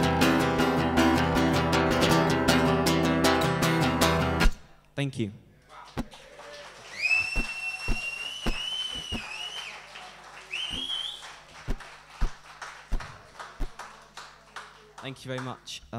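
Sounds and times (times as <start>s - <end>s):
audience clapping: 5.7s - 15.8s
person whistling loudly: 6.9s - 9.8s, 10.5s - 11.3s.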